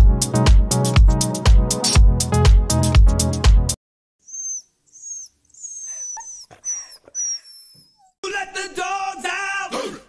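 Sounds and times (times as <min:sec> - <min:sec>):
animal high-pitched whines: 0:04.3 - 0:08.2.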